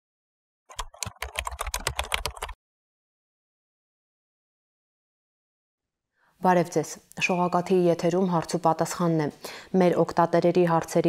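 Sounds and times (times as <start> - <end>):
keyboard typing: 0.7 - 2.6.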